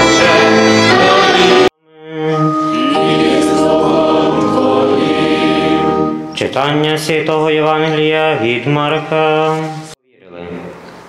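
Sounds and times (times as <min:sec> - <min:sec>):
group singing a long chord: 0:00.0 - 0:06.3.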